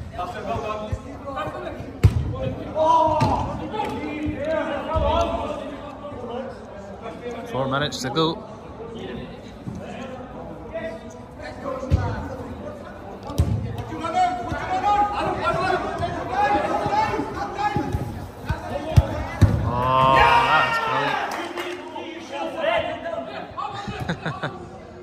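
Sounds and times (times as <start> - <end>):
players shouting: 14.0 - 21.6.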